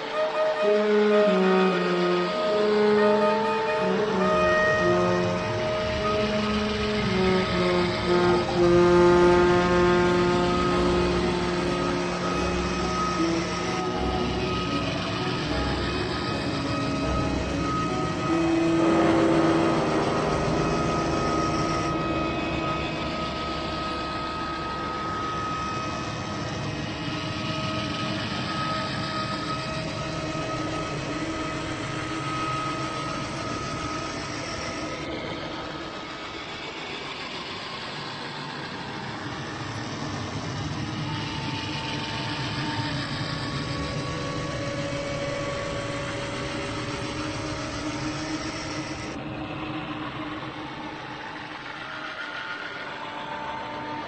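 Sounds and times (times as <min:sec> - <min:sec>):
long-held drone tones: 0:00.0 - 0:54.0.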